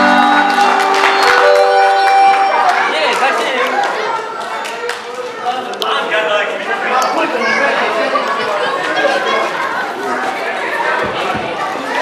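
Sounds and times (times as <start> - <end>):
overlapping chatter of guests: 0.0 - 12.0.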